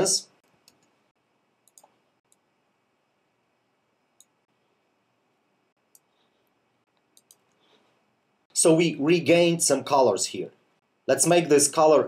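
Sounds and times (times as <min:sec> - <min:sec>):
computer mouse clicks: 0:00.4 - 0:01.0, 0:01.6 - 0:02.5, 0:04.2 - 0:04.4, 0:05.9 - 0:06.2, 0:06.9 - 0:07.6.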